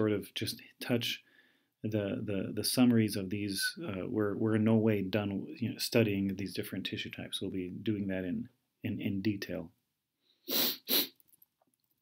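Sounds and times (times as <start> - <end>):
person sneezing: 10.5 - 11.2.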